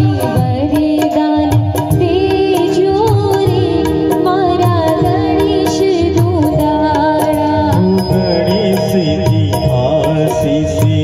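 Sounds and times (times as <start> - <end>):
regular percussion beat: 0.0 - 11.0
man singing into microphone: 7.4 - 11.0.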